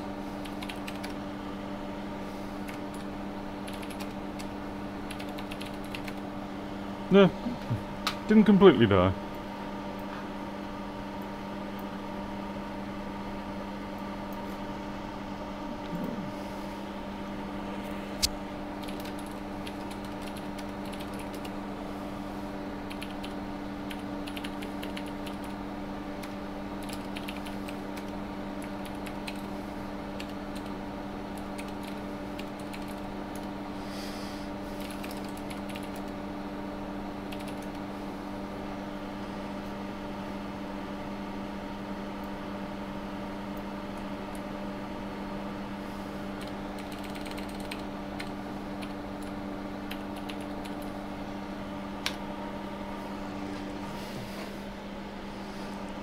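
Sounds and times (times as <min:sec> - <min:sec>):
computer keyboard typing: 0:00.4 - 0:01.2, 0:02.6 - 0:06.2, 0:18.8 - 0:21.6, 0:22.8 - 0:25.6, 0:26.2 - 0:33.5, 0:34.8 - 0:36.2, 0:37.2 - 0:37.8, 0:46.4 - 0:51.0
fume extractor humming: 0:06.2 - 0:18.8, 0:47.8 - 0:56.0.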